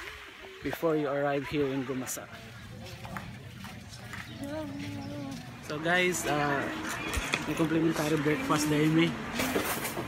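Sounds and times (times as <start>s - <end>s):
faint voices: 0.3s - 10.0s
footsteps on sand: 1.6s - 9.6s.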